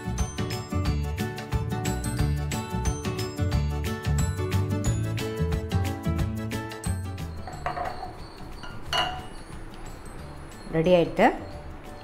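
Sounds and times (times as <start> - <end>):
background music with beat: 0.0 - 10.5
glass tumblers clinking on counter: 7.4 - 9.4.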